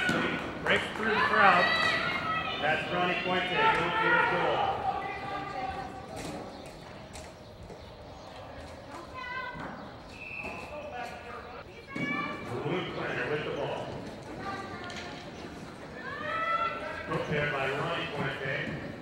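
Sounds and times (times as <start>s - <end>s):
voices calling out: 0.0s - 19.0s
hoofbeats galloping on dirt: 5.0s - 11.3s.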